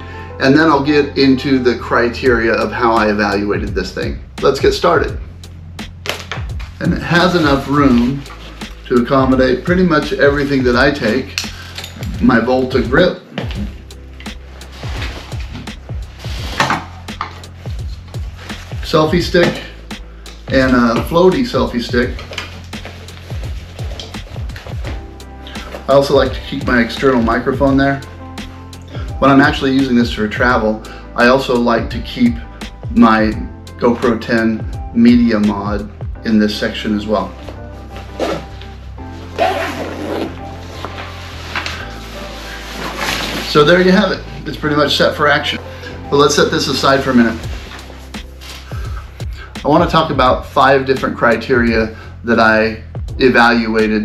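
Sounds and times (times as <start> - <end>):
background music with steady beat: 0.0 - 54.0
backpack fabric scuffs: 13.2 - 19.8, 21.9 - 27.5, 37.2 - 44.0, 46.7 - 49.1.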